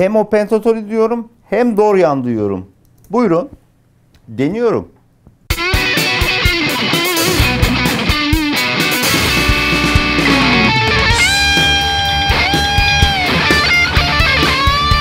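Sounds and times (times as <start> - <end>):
backing drums: 5.5 - 15.0
bass: 5.5 - 15.0
overdriven electric guitar lead: 5.5 - 15.0.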